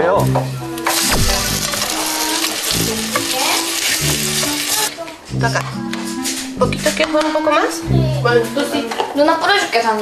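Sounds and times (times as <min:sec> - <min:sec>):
light background music: 0:00.0 - 0:10.0
bread sizzling in a pan: 0:00.9 - 0:04.9.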